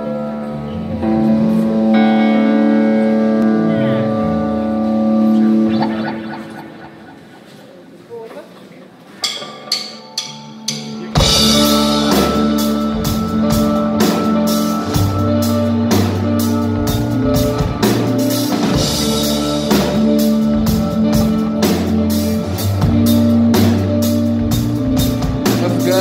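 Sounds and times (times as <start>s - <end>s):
rock band playing: 1.1s - 7.7s, 10.4s - 26.0s
held guitar chord ringing: 2.0s - 8.0s.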